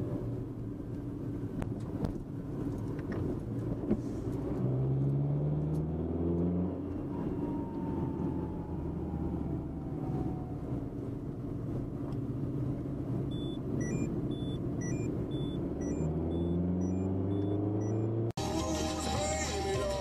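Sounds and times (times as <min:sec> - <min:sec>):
car engine and road rumble: 0:00.0 - 0:20.0
short high electronic tones: 0:13.3 - 0:18.3.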